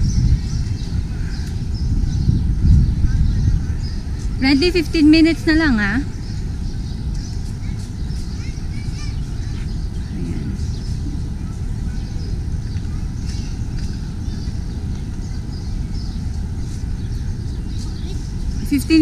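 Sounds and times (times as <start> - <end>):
distant children's voices: 0.0 - 19.0
wind rumble on microphone: 0.0 - 19.0.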